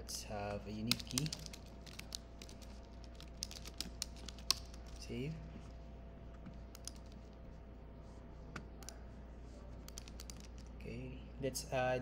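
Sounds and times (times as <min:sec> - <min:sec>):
computer keyboard typing: 0:00.8 - 0:05.0, 0:06.7 - 0:07.2, 0:09.9 - 0:10.7.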